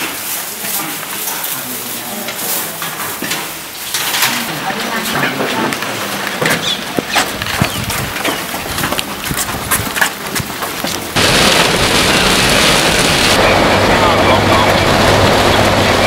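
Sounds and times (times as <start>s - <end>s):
voices: 0.0s - 8.8s, 13.4s - 16.0s
heavy rain pouring on a car: 11.2s - 16.0s.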